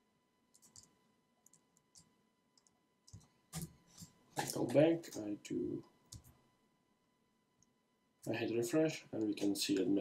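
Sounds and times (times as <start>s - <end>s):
keyboard and mouse clicks: 0.5s - 4.5s, 6.1s - 6.4s.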